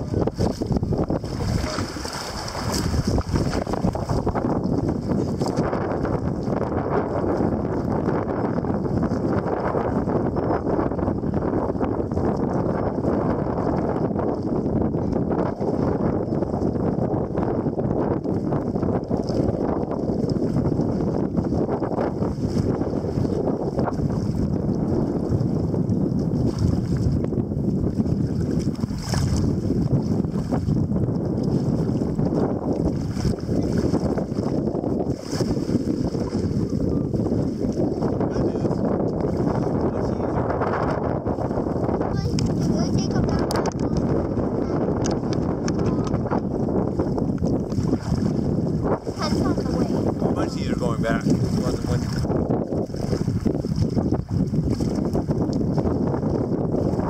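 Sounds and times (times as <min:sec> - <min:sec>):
water splashing against kayak: 0:00.0 - 0:57.0
wind buffeting microphone: 0:00.0 - 0:57.0.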